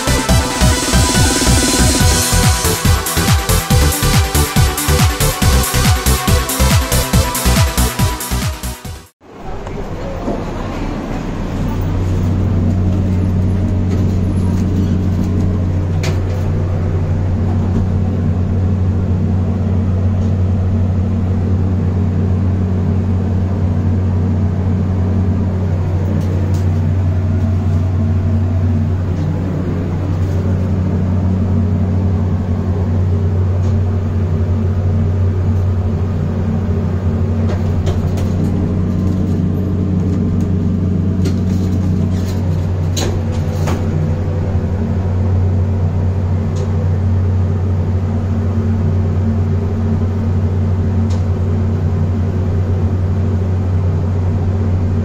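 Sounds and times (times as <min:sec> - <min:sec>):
lift car hum: 0:00.0 - 0:55.0.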